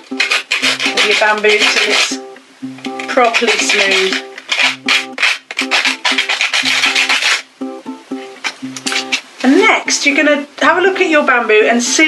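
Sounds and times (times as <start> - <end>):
sandpaper rubbing on bamboo: 0.0 - 2.3, 3.0 - 7.5, 8.8 - 9.3
plucked-string background music: 0.0 - 10.4.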